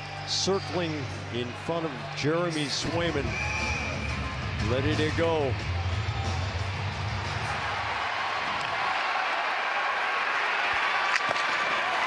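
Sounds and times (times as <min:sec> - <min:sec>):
bass-heavy arena music: 0:00.0 - 0:08.1
arena crowd noise: 0:00.0 - 0:12.0.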